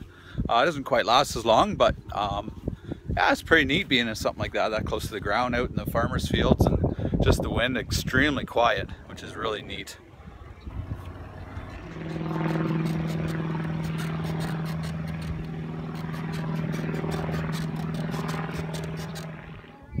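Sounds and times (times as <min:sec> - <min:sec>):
propeller aircraft engine: 0:08.8 - 0:20.0.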